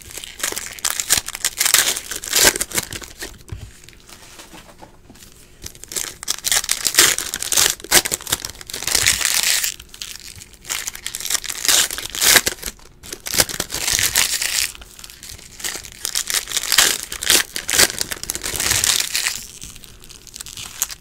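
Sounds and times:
foil wrappers tearing and crinkling: 0.0s - 4.2s, 5.6s - 21.0s.

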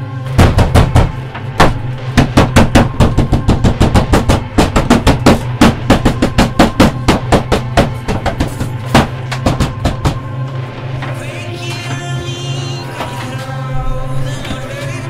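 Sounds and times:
steady low drone: 0.0s - 15.0s.

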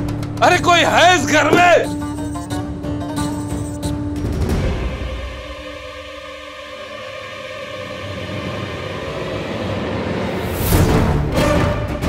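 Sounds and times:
drum hits: 0.0s - 2.4s
low rumbling dramatic score: 4.2s - 12.0s.

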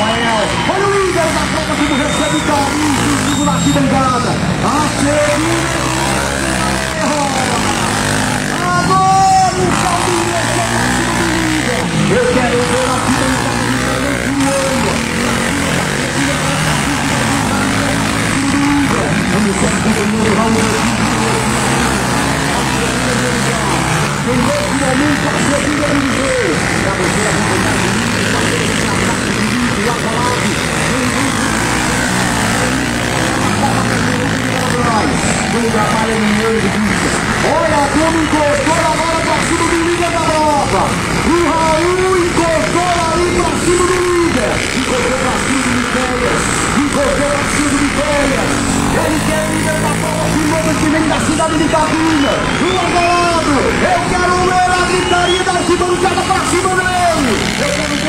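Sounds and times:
dirt bike engines revving: 0.0s - 58.0s
people's voices: 0.0s - 58.0s.

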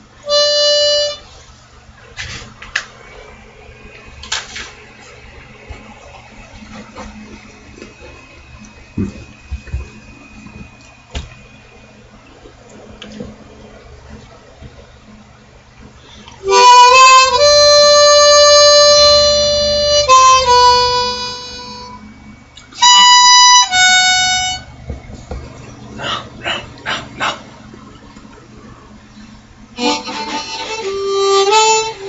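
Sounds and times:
harmonica held notes: 0.0s - 1.4s, 16.4s - 22.1s, 22.7s - 24.8s, 29.8s - 32.0s.

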